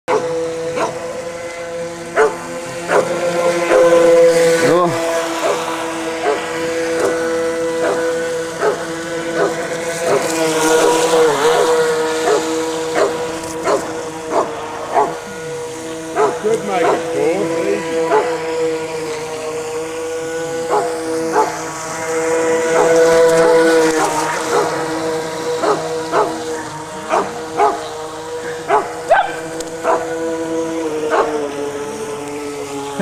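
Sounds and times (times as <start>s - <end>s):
toy boat motor whining: 0.1s - 33.0s
dog barking: 2.2s - 3.0s, 12.2s - 12.4s, 13.0s - 15.2s, 16.2s - 17.0s, 18.1s - 18.3s, 20.7s - 21.5s, 25.6s - 26.4s, 27.1s - 27.8s, 28.7s - 30.1s, 31.1s - 31.3s.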